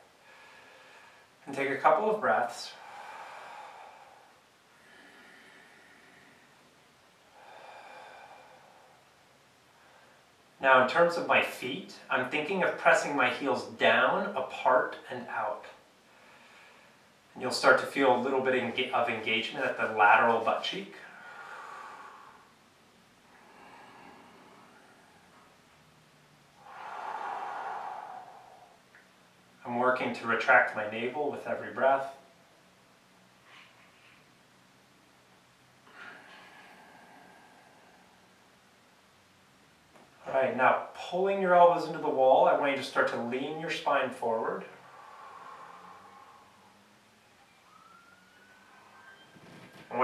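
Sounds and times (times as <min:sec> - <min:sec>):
low hum: 0:00.0 - 0:41.0, 0:44.4 - 0:50.0
man exhaling breathily: 0:02.7 - 0:06.7, 0:07.3 - 0:10.2, 0:21.0 - 0:22.6, 0:23.3 - 0:29.1, 0:35.8 - 0:38.4, 0:44.6 - 0:47.0
faint tone rising in pitch: 0:45.5 - 0:50.0
faint high tone: 0:47.4 - 0:50.0.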